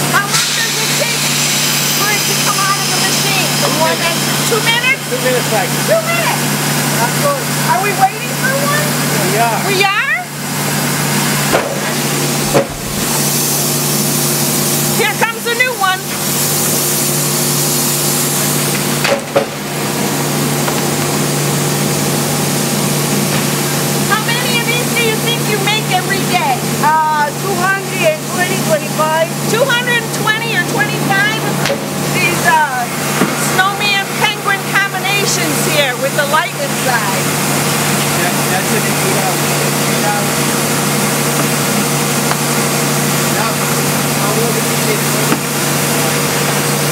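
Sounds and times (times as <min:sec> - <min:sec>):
hissing air blasts: 0:00.0 - 0:04.8, 0:10.5 - 0:21.4
molding machine humming: 0:00.0 - 0:46.9
sharp knocks: 0:12.5 - 0:13.1.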